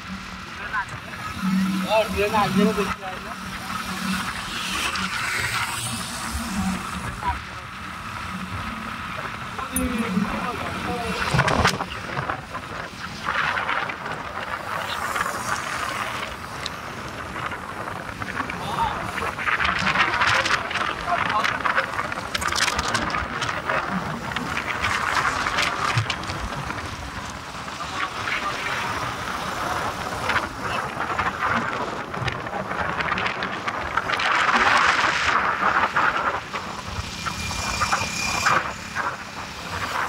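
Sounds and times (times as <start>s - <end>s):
vehicle rushing along highway: 0.0s - 40.0s
wind on microphone: 0.9s - 40.0s.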